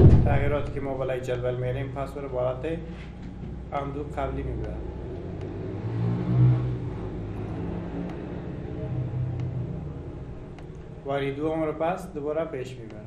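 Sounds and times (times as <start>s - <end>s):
low engine hum: 2.6s - 11.5s.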